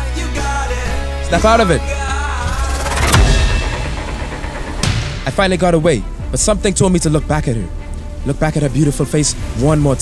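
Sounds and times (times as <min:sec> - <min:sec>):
film music: 0:00.0 - 0:10.0
short swoosh: 0:02.4 - 0:05.8
low boom with deep rumble: 0:02.5 - 0:07.2.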